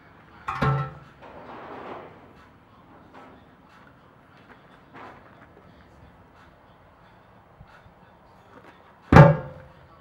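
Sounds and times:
heavy implement thudding on ground: 9.1s - 9.6s.

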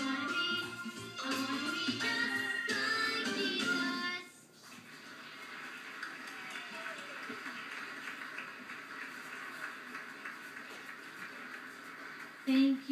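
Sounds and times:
congregation applauding on television: 4.8s - 12.9s.

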